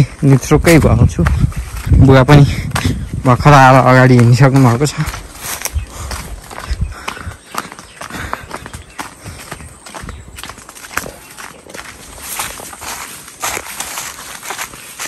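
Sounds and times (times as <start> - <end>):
footsteps on dirt path: 0.0 - 15.0
heavy low thuds: 0.4 - 7.4.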